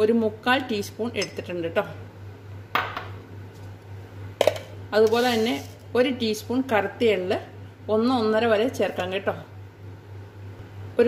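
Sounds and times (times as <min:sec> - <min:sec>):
steady low hum: 0:00.0 - 0:11.0
glass jar knocking on countertop: 0:02.8 - 0:03.2.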